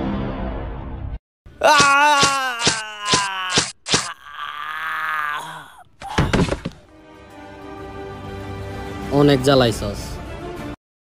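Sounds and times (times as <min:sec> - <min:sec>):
man groaning: 0:01.6 - 0:06.5
man wailing in fright: 0:01.6 - 0:06.5
sharp whacks: 0:01.7 - 0:04.2.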